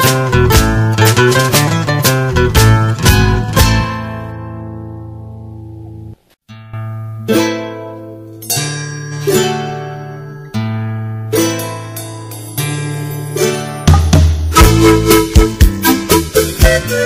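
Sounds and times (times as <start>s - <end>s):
plucked strings: 0.0s - 17.0s
folk music held chord: 7.4s - 17.0s.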